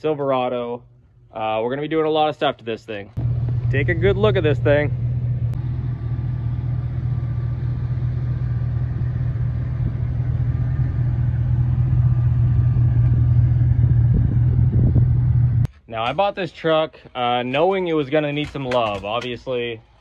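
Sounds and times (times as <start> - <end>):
truck engine idling: 3.2 - 15.7.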